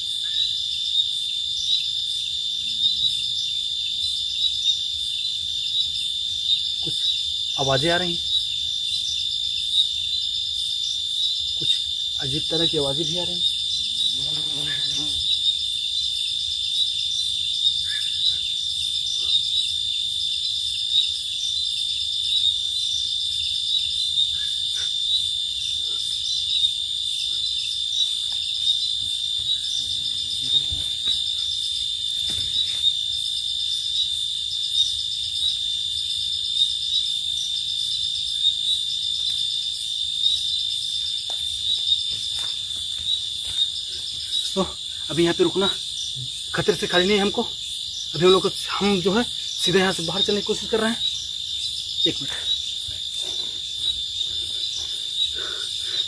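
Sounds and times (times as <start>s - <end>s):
crickets trilling: 0.0s - 56.0s.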